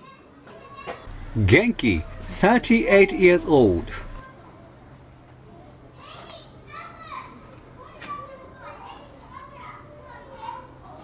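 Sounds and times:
young children talking and calling: 0.0 - 4.8, 5.5 - 11.0.

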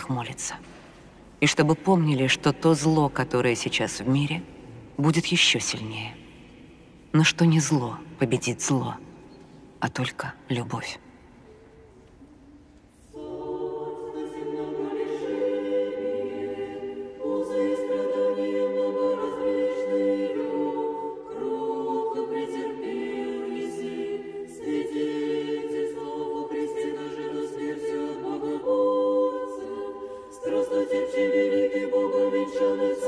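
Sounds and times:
choir singing unaccompanied: 12.9 - 33.0.

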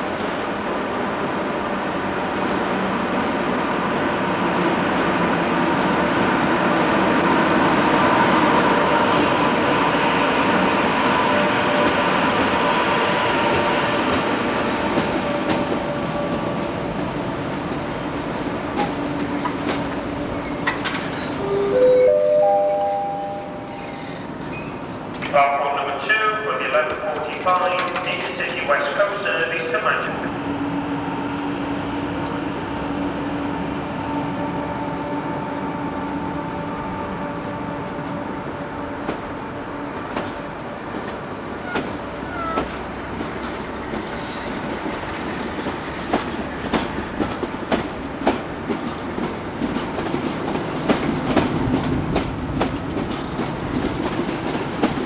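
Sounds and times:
train rolling rumble: 0.0 - 55.0
train wheels clicking over rail joints: 18.7 - 21.4, 26.8 - 28.7, 40.0 - 55.0
person speaking: 25.3 - 30.3.

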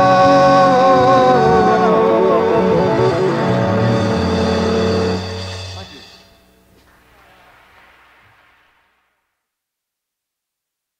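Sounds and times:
faint hiss: 5.3 - 9.7.

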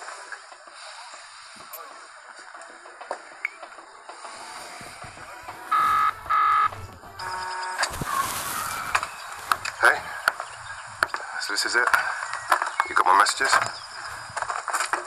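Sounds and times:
phone ringing: 5.2 - 8.0.

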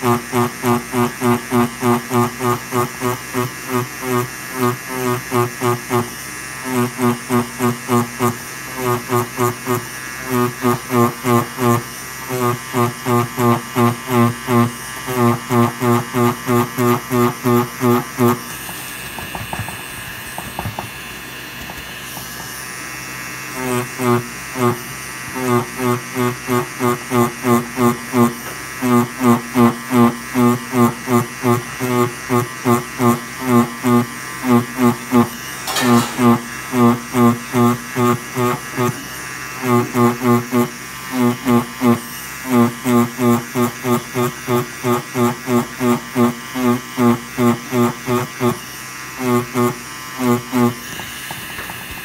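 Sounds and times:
tattoo machine buzzing: 0.0 - 52.0.

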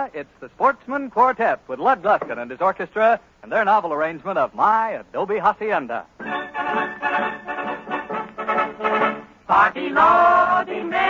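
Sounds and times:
announcer speaking: 0.0 - 6.1
orchestra playing held chords: 6.2 - 9.4.

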